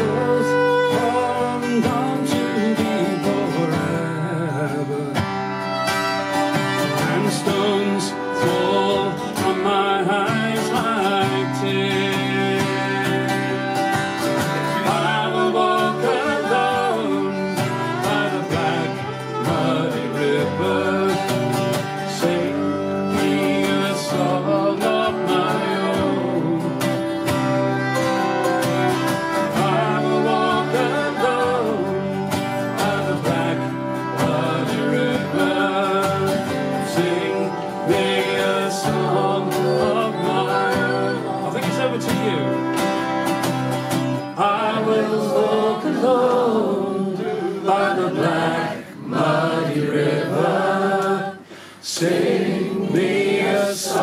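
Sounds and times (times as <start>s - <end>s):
fiddle playing melody: 0.0s - 51.5s
acoustic guitars strumming: 0.0s - 54.0s.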